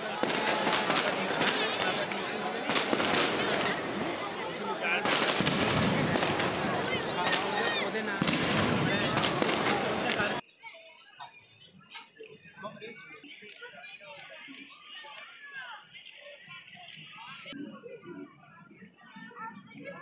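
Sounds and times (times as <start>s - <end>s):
fireworks crackling and popping: 0.0s - 10.4s, 13.1s - 17.6s
crowd chatter: 0.0s - 20.0s.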